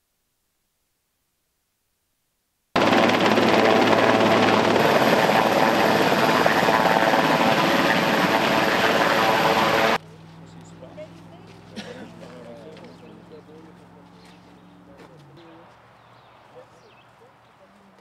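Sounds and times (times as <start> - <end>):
helicopter hovering: 2.8 - 11.7.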